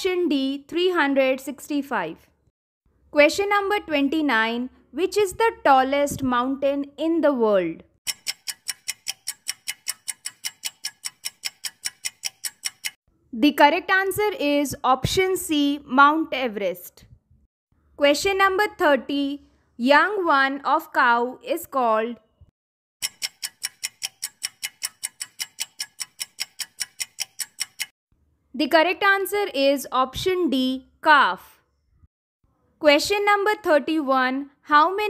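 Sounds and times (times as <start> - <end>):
clock-like timer ticking: 8.0 - 13.0, 23.0 - 28.0.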